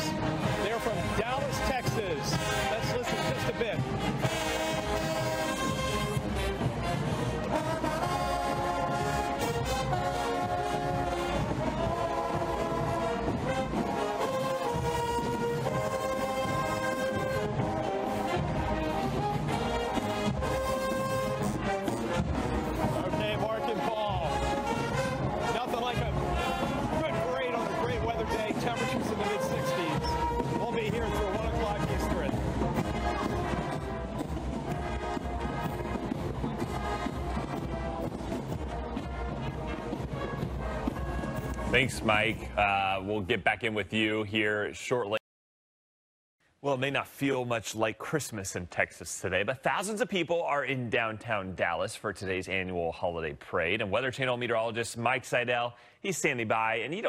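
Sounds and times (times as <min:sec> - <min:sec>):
marching band drums: 0:00.0 - 0:42.8
marching band brass: 0:00.0 - 0:43.2.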